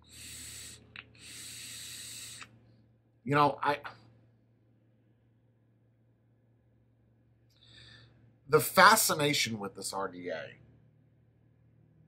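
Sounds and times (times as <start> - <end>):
air hissing through atomizer: 0.0 - 2.6.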